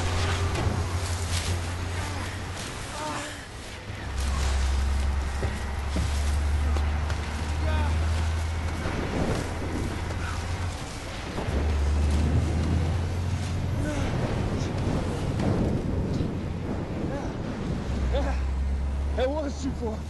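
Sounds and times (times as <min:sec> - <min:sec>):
deep truck rumble: 0:00.0 - 0:20.0
road noise: 0:00.0 - 0:20.0
wind: 0:00.0 - 0:20.0.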